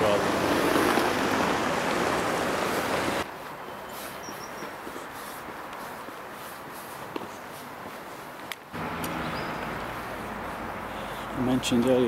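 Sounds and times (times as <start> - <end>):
open-air ambience: 0.0 - 12.0
soft footsteps: 2.7 - 11.9
high chirp: 9.2 - 9.8.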